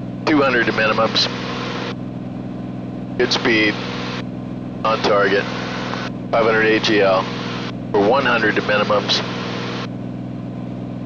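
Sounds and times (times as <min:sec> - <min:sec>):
aircraft engine and propeller drone: 0:00.0 - 0:11.0
intercom hiss: 0:00.3 - 0:01.9, 0:03.2 - 0:04.2, 0:04.9 - 0:09.9.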